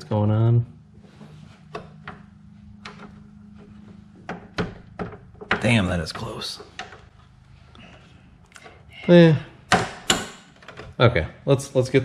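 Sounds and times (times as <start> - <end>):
steady low hum: 0.0 - 10.6.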